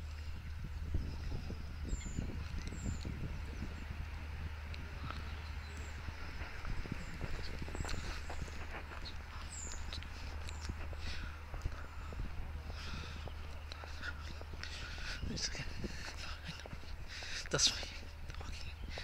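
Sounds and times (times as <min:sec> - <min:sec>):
footsteps on a path: 0:00.0 - 0:19.0
wind rumble on microphone: 0:00.0 - 0:19.0.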